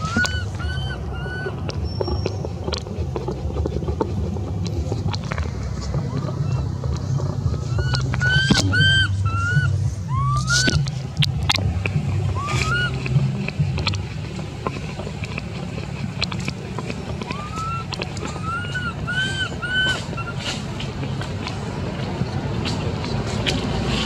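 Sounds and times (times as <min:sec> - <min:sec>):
young monkey whimpering coos: 0:00.0 - 0:01.8, 0:06.0 - 0:11.0, 0:12.3 - 0:13.2, 0:17.2 - 0:20.7
low rumble: 0:00.0 - 0:24.0.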